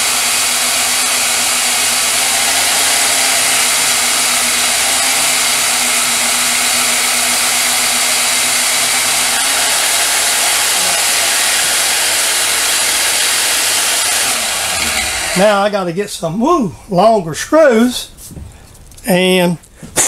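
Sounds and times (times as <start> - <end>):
band saw cutting plastic: 0.0 - 15.8.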